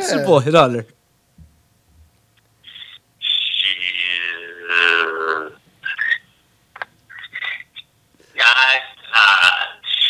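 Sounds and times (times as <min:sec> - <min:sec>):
man's voice over telephone: 0:03.6 - 0:05.6, 0:08.3 - 0:10.0.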